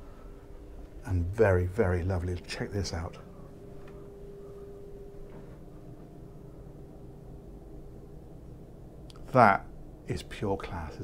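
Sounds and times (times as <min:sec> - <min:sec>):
faint high steady tone: 0:00.0 - 0:11.0
low machinery hum: 0:00.0 - 0:11.0.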